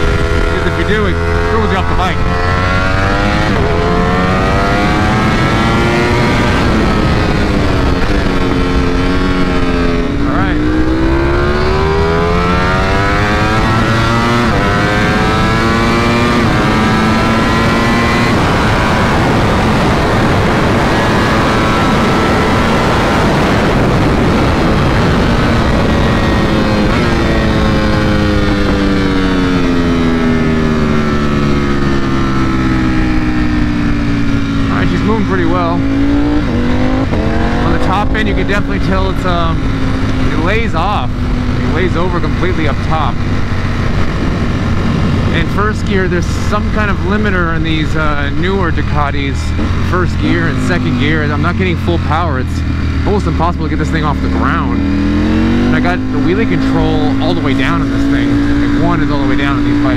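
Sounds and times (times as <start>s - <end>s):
motorcycle engine revving: 0.0s - 59.9s
wind rush: 0.0s - 59.9s.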